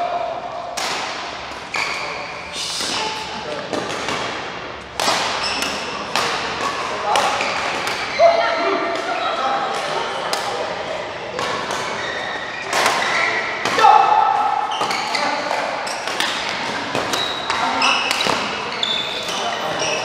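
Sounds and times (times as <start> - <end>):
racket hitting shuttlecock: 2.8 - 8.1.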